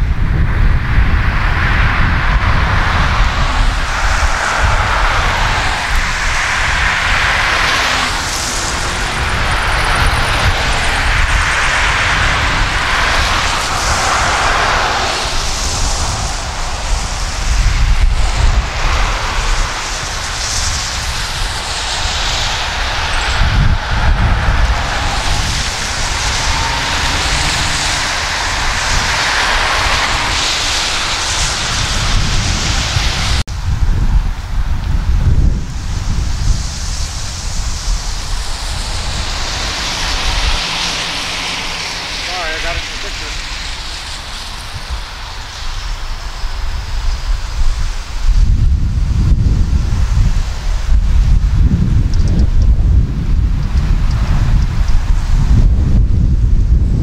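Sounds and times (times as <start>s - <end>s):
wind rumble on microphone: 0.0s - 57.0s
cars driving past: 1.3s - 33.4s, 36.7s - 46.5s.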